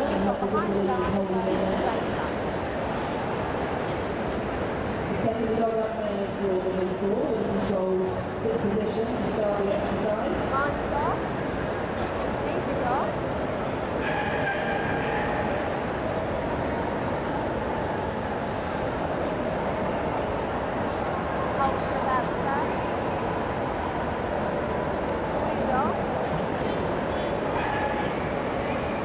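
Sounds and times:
murmur of crowd voices: 0.0s - 29.0s
dogs barking: 14.0s - 15.6s.

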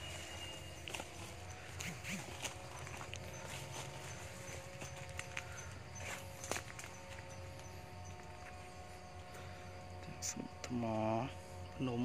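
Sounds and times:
footsteps on dry leaves and stone: 0.0s - 9.3s
leaves and twigs crackling: 0.0s - 10.0s
faint background hum: 0.0s - 12.0s.

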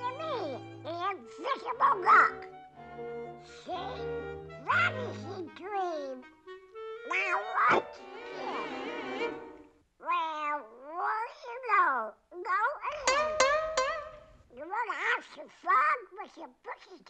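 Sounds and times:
orchestral cartoon music: 0.0s - 9.8s, 12.9s - 14.4s.

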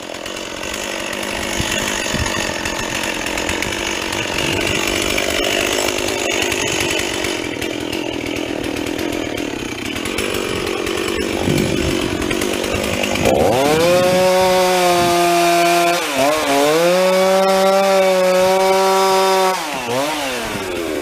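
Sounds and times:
chainsaw cutting wood: 0.0s - 21.0s.

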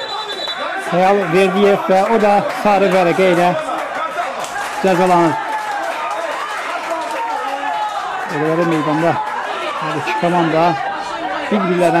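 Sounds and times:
voices calling out and talking: 0.0s - 12.0s.

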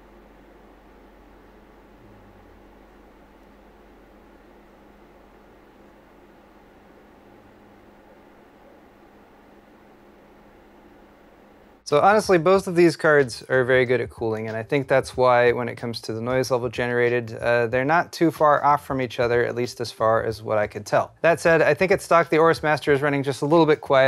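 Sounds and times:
computer cooling fans rushing: 0.0s - 13.4s
faint steady hum: 0.0s - 24.0s.

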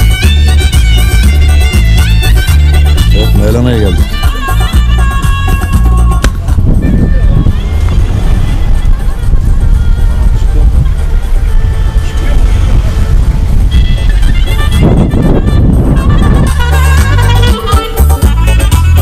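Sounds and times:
background music: 0.0s - 19.0s
voices: 0.8s - 19.0s
car engine and road noise: 4.8s - 17.4s.

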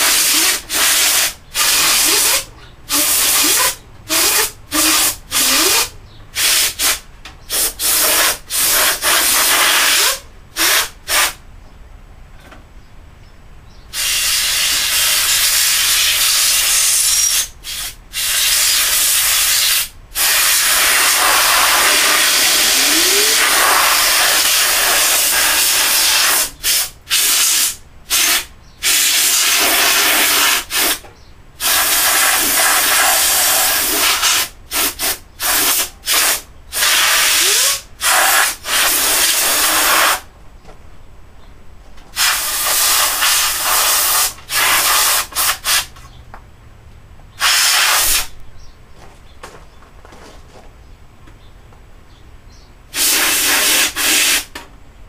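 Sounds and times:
compressed air hissing blasts: 0.0s - 11.4s, 13.9s - 31.0s, 31.6s - 40.3s, 42.1s - 46.0s, 47.3s - 48.4s, 52.9s - 54.5s.

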